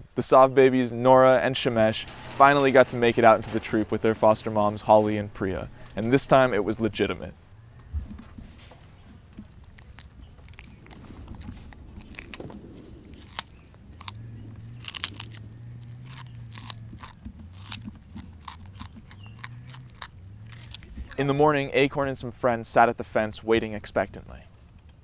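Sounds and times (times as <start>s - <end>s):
monkeys chewing fruit: 7.7s - 21.4s.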